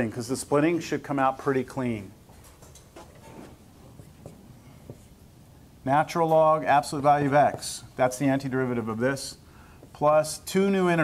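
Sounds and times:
marker writing on a whiteboard: 3.0s - 5.2s.

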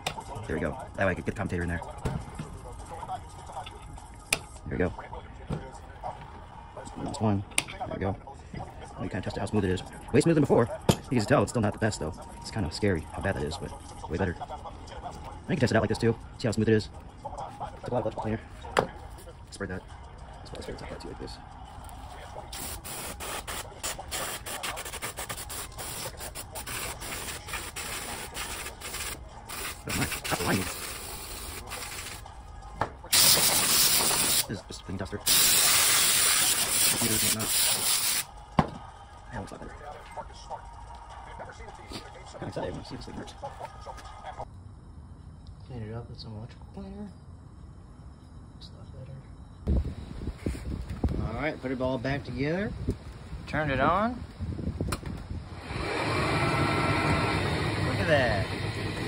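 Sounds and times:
aerosol spray hissing: 22.5s - 32.2s, 33.2s - 34.5s, 35.3s - 38.3s.

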